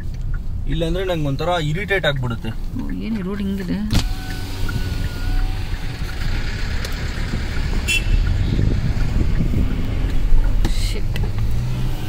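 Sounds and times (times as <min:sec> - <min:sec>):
tyres rumbling on dirt track: 0:00.0 - 0:12.0.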